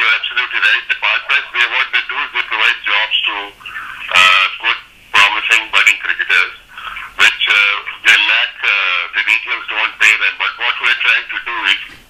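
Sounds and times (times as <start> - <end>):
man's voice over phone line: 0.0 - 12.0.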